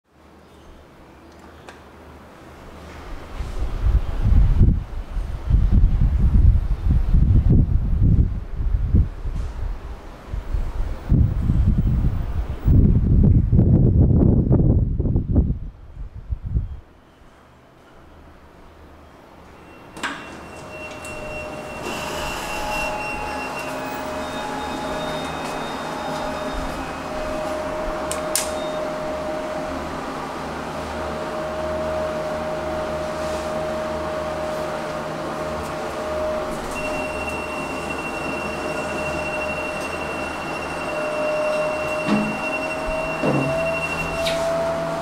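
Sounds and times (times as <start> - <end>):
lift rumble: 2.0 - 45.0
lift hum: 17.2 - 45.0
high whine: 17.9 - 45.0.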